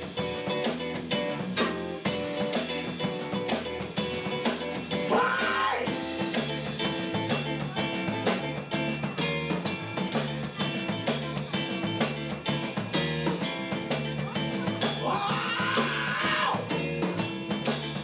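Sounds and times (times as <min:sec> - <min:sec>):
drum kit: 0:00.0 - 0:18.0
electric bass: 0:00.0 - 0:18.0
electric guitar: 0:00.0 - 0:18.0.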